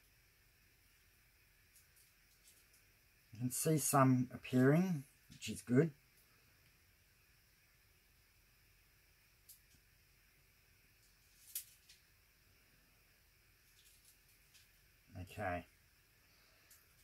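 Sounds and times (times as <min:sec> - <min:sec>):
soft rustle: 0:00.8 - 0:02.9, 0:11.0 - 0:12.1, 0:13.5 - 0:15.0.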